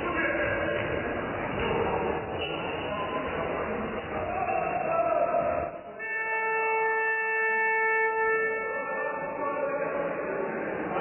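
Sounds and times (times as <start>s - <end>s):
scoreboard horn buzz: 6.0s - 9.5s.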